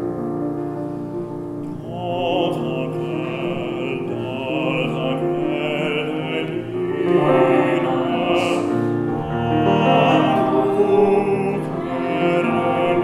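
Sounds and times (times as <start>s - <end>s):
piano accompaniment: 0.0s - 13.0s
man singing with vibrato: 1.6s - 13.0s.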